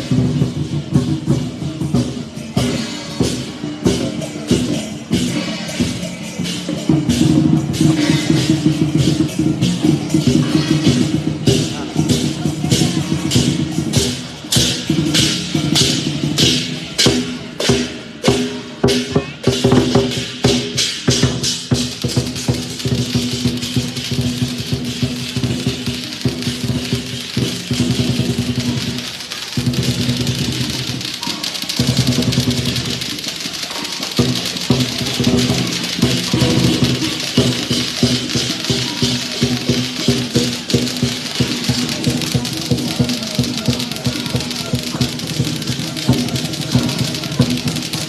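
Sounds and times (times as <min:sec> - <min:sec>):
clashing cymbals: 0:00.0 - 0:48.0
drum beaten in rapid strokes: 0:00.0 - 0:48.0.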